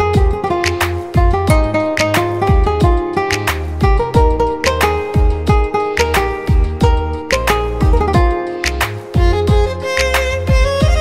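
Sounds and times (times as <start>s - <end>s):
plucked string melody over beat: 0.0s - 11.0s
booming kick drums: 1.2s - 1.8s, 2.4s - 3.1s, 3.8s - 4.5s, 5.2s - 5.7s, 6.4s - 7.2s, 7.8s - 8.4s, 9.2s - 9.7s.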